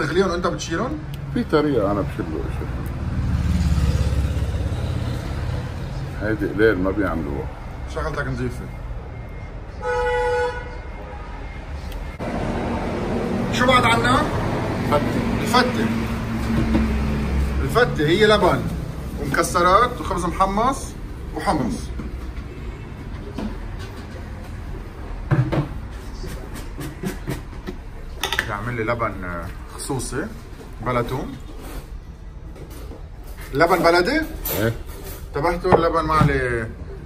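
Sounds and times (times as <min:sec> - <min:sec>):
street background noise: 0:00.0 - 0:37.0
short vehicle horn toot: 0:09.8 - 0:10.8
dishes clicking and knocking: 0:25.3 - 0:28.6.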